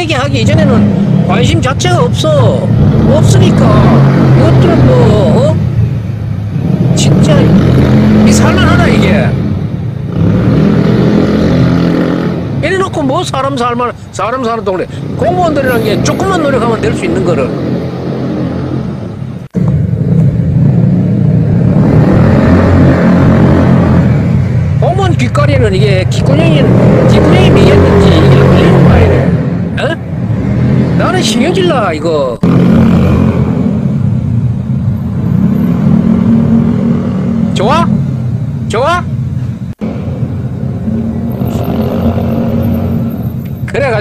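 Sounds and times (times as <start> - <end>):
city traffic: 0.0 - 44.0
motorcycle engine revving: 0.4 - 12.9, 15.2 - 38.5, 39.8 - 43.9.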